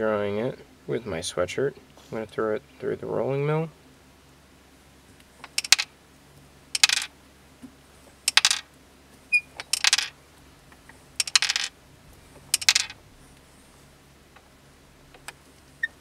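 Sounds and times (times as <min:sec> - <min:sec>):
rolling mill metallic clicking: 0:12.5 - 0:13.0.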